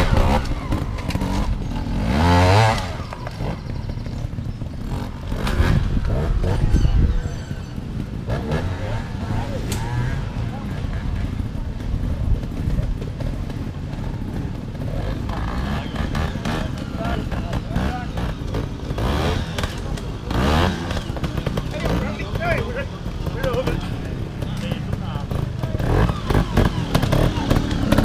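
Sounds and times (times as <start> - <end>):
motorcycle engines running: 0.0 - 28.0
indistinct talking: 15.1 - 28.0.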